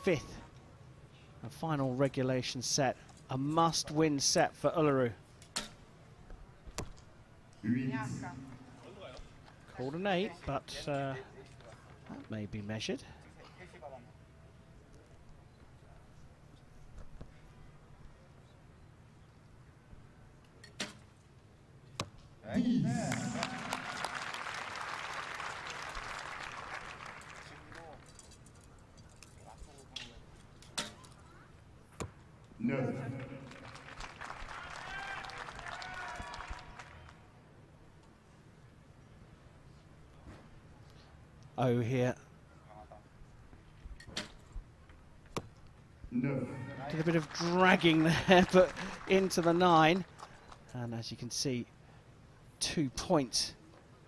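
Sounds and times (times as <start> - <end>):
background hum: 0.0 - 54.0
crowd cheering and applauding: 23.0 - 27.8, 32.9 - 37.1, 46.6 - 50.1.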